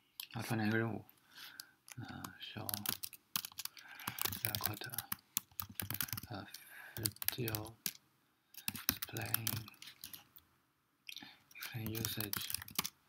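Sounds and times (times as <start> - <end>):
typing on computer keyboard: 2.2 - 6.3, 7.0 - 8.0, 8.6 - 10.2, 11.6 - 13.0.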